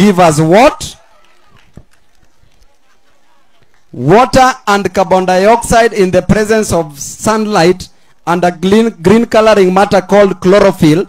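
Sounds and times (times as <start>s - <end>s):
distant voices outdoors: 0.0s - 5.2s.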